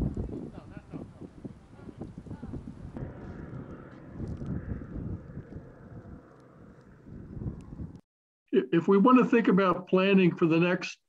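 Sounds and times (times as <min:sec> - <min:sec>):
wind noise on microphone: 0:00.0 - 0:08.0.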